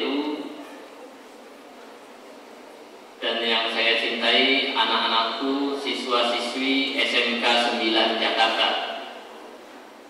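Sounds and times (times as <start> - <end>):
man talking over a microphone: 0.0 - 0.6, 3.2 - 9.2
faint steady background noise: 0.0 - 10.0.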